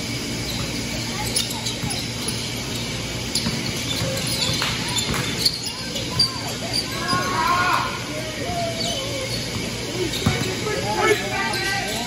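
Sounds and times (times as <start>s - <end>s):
sneakers squeaking: 0.0s - 12.0s
voices calling out: 0.6s - 12.0s
basketball bouncing on hardwood floor: 3.4s - 5.3s.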